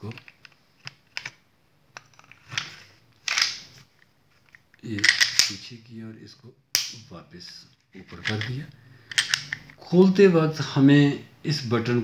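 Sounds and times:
pistol slide scraping: 0:02.2 - 0:03.7, 0:08.1 - 0:09.8.

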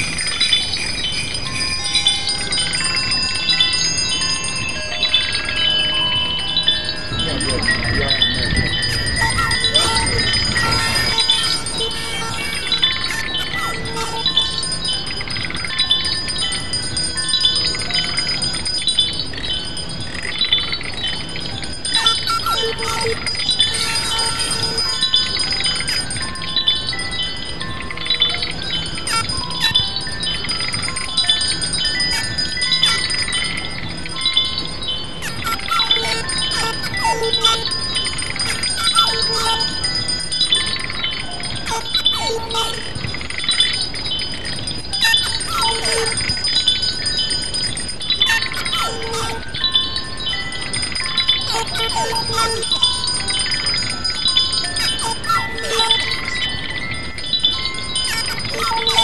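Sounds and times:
looping chime tones: 0:00.0 - 0:59.0
circuit-bent toy sounds: 0:01.5 - 0:59.0
held tones: 0:01.5 - 0:59.0.

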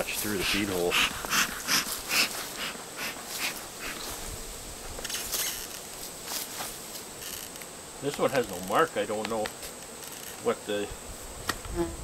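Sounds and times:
bellows puffing air: 0:00.1 - 0:04.3.

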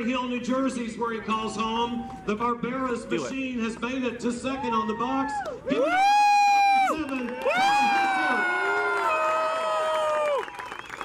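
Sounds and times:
man shouting over public address: 0:00.0 - 0:08.8
crowd cheering: 0:04.5 - 0:11.0.

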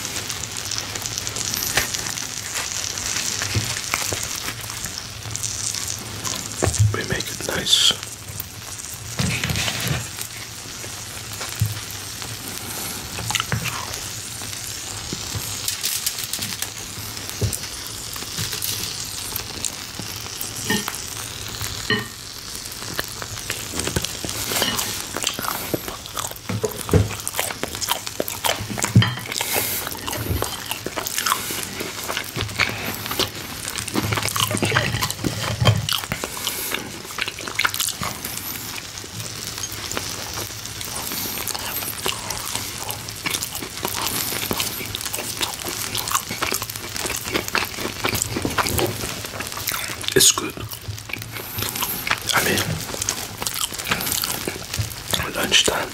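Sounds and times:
steak sizzling on grill plate: 0:00.0 - 0:55.9.

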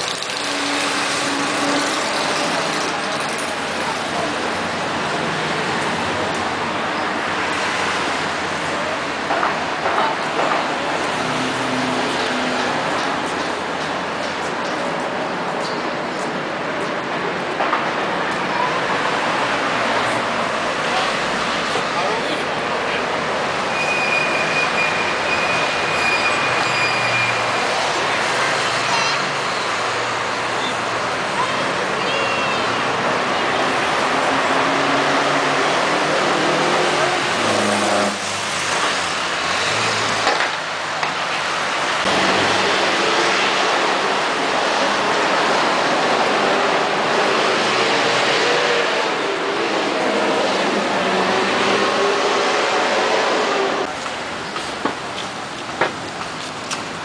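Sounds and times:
cars and buses driving past: 0:00.0 - 0:57.0.

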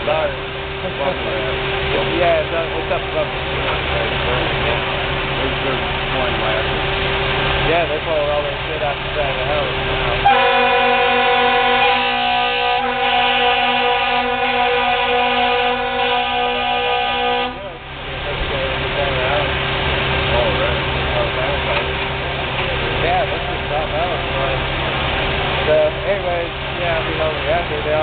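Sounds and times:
vehicle engine running: 0:00.0 - 0:28.0
air horn chord: 0:10.2 - 0:17.8.

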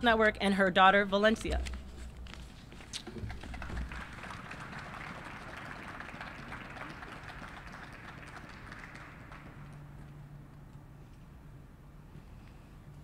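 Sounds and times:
audience applauding: 0:03.0 - 0:10.1.

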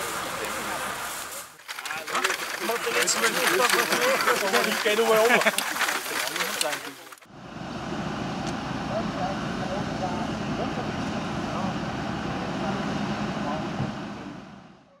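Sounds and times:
faint voices: 0:00.0 - 0:07.2
vehicle engine running: 0:00.0 - 0:15.0.

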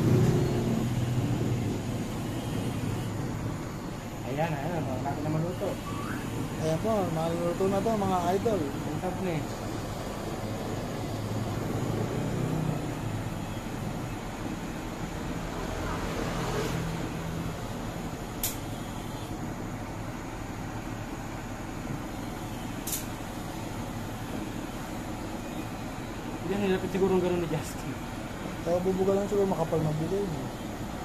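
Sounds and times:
sharp clicks: 0:18.4 - 0:18.6, 0:22.8 - 0:23.1.

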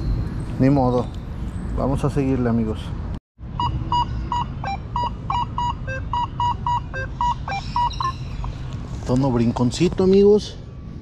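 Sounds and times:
metal detector short beeps: 0:03.6 - 0:08.5.

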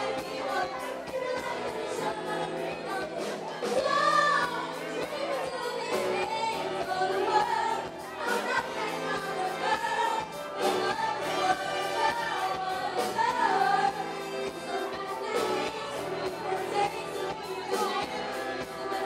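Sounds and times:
live band playing: 0:00.0 - 0:19.0
women singing together: 0:00.0 - 0:19.0.

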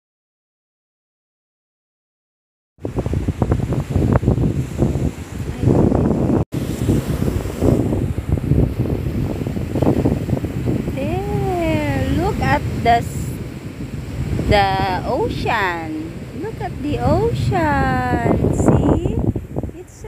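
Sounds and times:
wind buffeting microphone: 0:02.8 - 0:20.0.

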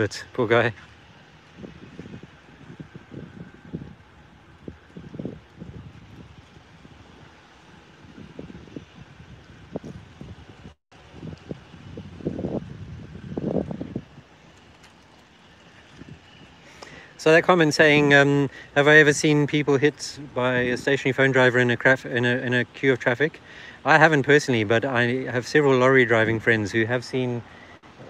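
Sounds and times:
wind buffeting microphone: 0:00.0 - 0:16.7
distant street traffic: 0:00.0 - 0:28.0.

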